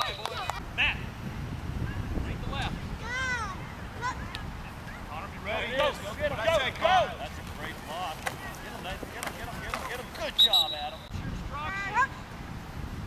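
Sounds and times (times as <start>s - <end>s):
referee's whistle: 10.3s - 11.2s.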